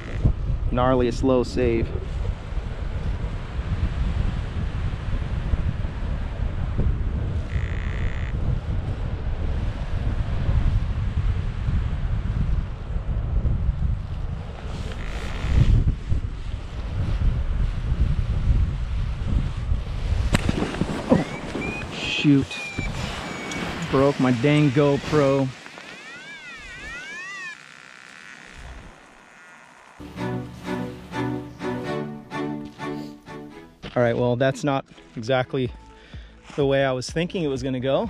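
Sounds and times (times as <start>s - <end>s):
wind buffeting microphone: 0.0s - 25.9s.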